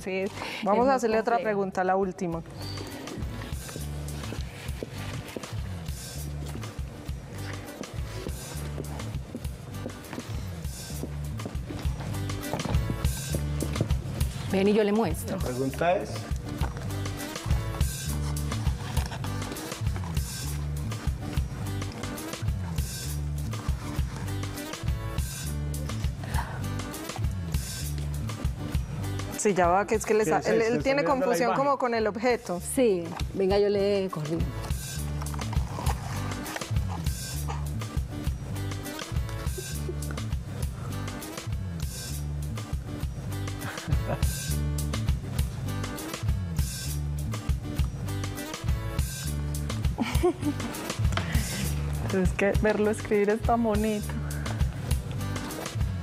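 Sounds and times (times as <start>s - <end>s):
light percussive beat: 2.4s - 31.1s, 32.8s - 56.0s
background music with bass line: 2.4s - 56.0s.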